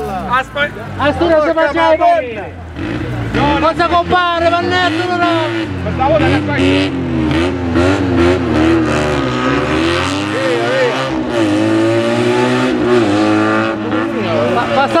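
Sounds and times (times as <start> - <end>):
car engine revving hard: 2.7 - 15.0.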